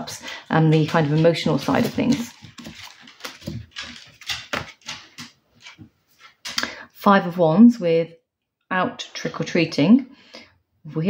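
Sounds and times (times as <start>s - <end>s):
cards rustling and slapping: 0.8s - 6.6s.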